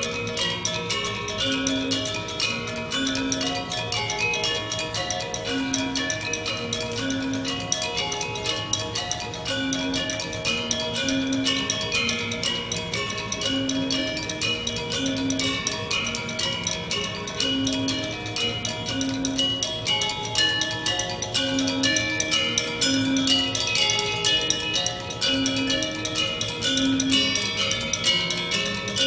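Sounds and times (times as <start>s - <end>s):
gamelan ensemble playing: 0.0s - 29.0s.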